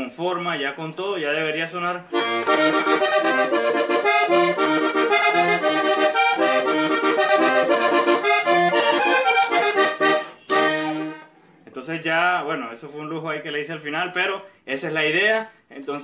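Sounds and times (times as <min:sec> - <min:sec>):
button accordion playing: 0:02.1 - 0:11.4.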